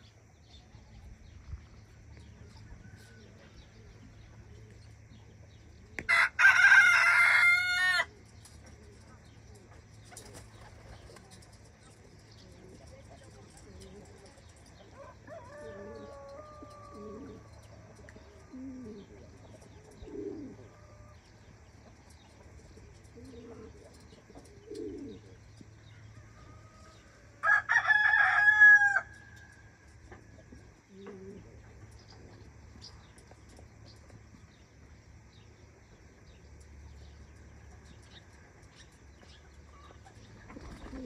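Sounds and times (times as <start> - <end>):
pigeons cooing: 2.0 - 27.1, 30.1 - 33.9, 39.3 - 41.0.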